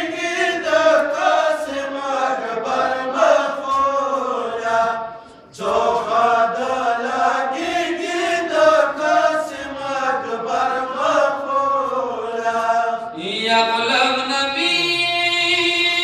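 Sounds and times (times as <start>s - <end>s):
men chanting a lament: 0.0s - 16.0s.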